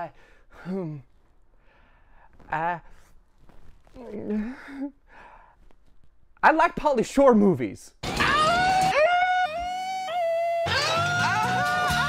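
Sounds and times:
short breath: 1.6s - 2.4s, 4.5s - 5.6s.

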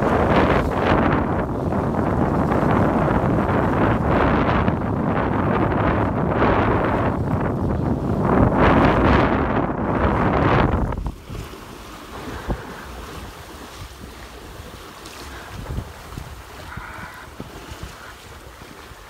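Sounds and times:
choppy water sloshing on hull: 0.0s - 19.0s
wind buffeting microphone: 0.0s - 19.0s.

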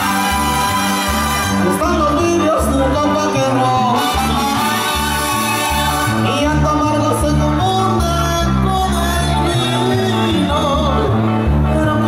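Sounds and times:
brass band dance music: 0.0s - 12.0s.

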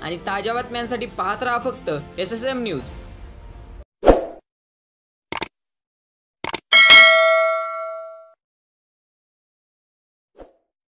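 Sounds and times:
notification bell ding: 6.7s - 8.4s.

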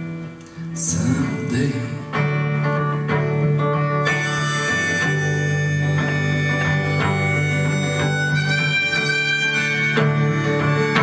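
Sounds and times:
strummed acoustic guitar: 0.0s - 11.0s
harmonica long held notes: 2.6s - 11.0s.

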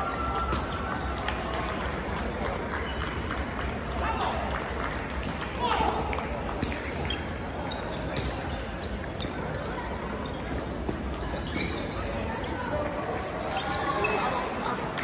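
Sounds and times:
hubbub of many voices: 0.0s - 15.0s
table tennis balls bouncing: 4.4s - 11.8s.

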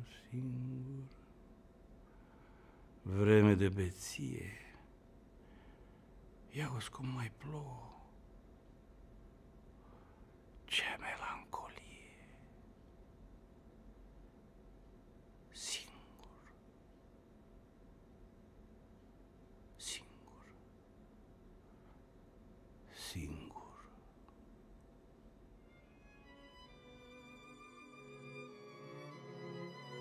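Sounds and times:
man whispering: 0.0s - 1.3s, 3.0s - 4.9s, 6.5s - 8.2s, 10.6s - 12.6s, 15.5s - 16.6s, 19.7s - 20.7s, 22.8s - 24.4s.

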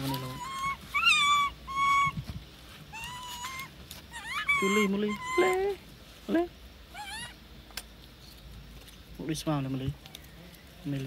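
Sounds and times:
monkey squeaky call: 0.0s - 2.2s, 2.9s - 5.8s, 6.9s - 7.4s.

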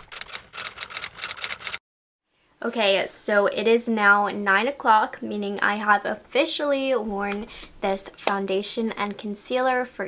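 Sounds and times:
typewriter keys clicking: 0.0s - 1.8s.

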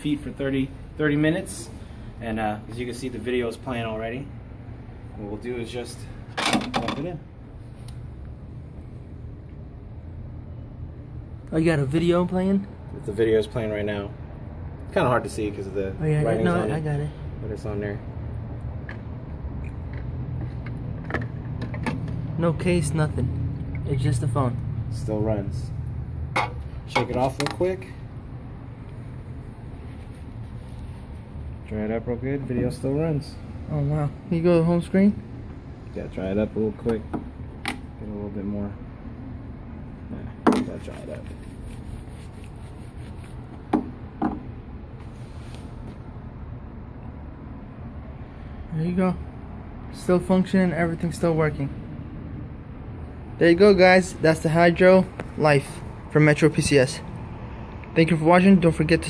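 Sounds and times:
towel wiping smartphone: 40.8s - 43.7s.

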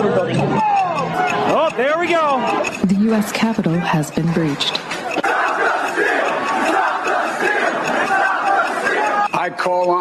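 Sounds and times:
crowd yelling and shouting: 0.0s - 2.9s, 3.6s - 9.4s.

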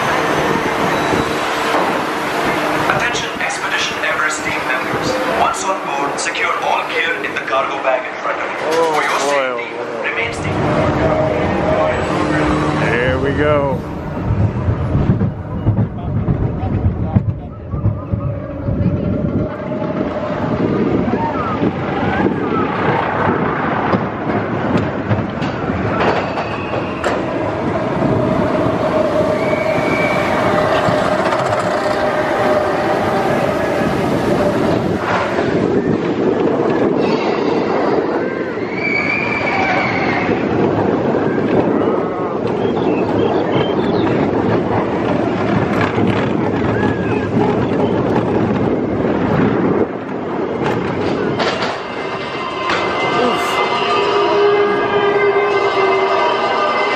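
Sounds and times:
roller coaster wheel rumble: 0.0s - 56.9s
wheels squealing on curves: 25.8s - 35.9s, 37.0s - 40.6s.

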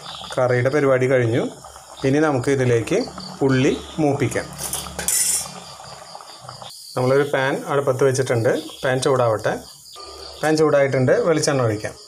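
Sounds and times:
metal utensils clattering against pot: 4.5s - 5.9s.

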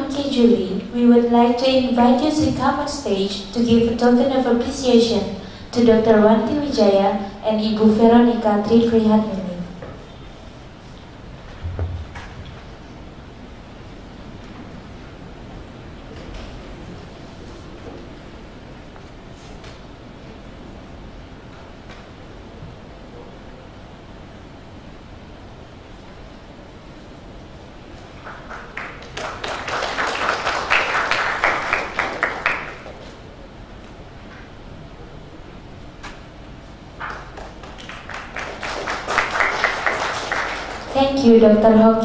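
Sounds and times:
audience applauding: 28.2s - 33.2s, 37.0s - 41.0s.

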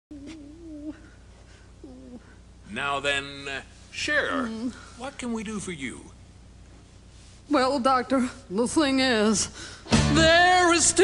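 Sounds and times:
person humming: 0.1s - 1.2s, 1.8s - 2.3s
low electrical hum: 0.1s - 11.0s.

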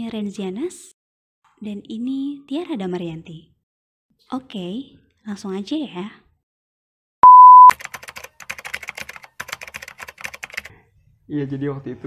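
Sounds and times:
keyboard typing clicks: 7.2s - 10.7s.

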